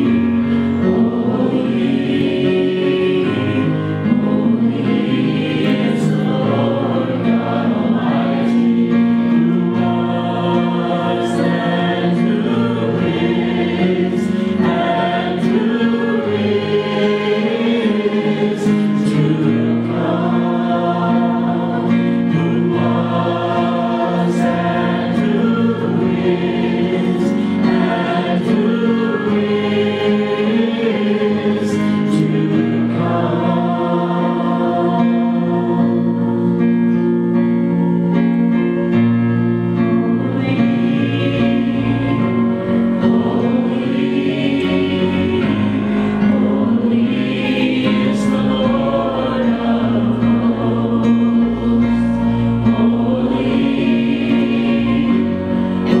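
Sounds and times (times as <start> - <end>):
group singing gospel song: 0.0 - 38.2, 39.7 - 56.0
worship band playing: 0.0 - 56.0.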